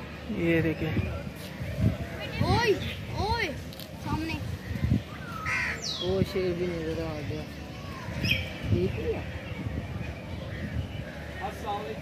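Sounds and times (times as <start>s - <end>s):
people's voices: 0.0s - 12.0s
birds calling: 0.1s - 12.0s.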